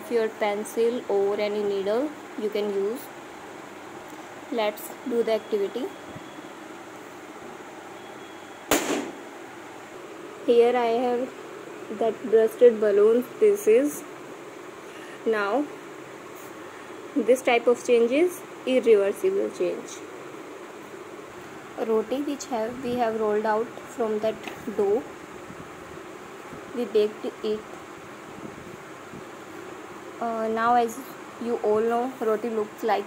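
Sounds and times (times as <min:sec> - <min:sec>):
woman speaking: 0:00.0 - 0:03.1, 0:04.5 - 0:06.0, 0:10.5 - 0:14.1, 0:15.2 - 0:15.7, 0:17.2 - 0:20.1, 0:21.8 - 0:25.1, 0:26.7 - 0:27.6, 0:30.2 - 0:33.0
balloon bursting with a pop: 0:08.7 - 0:09.2.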